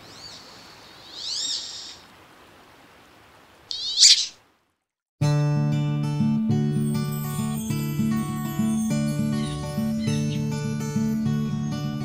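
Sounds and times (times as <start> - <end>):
faint steady hiss: 0.0 - 4.9
duck whistled squeals: 3.7 - 4.4.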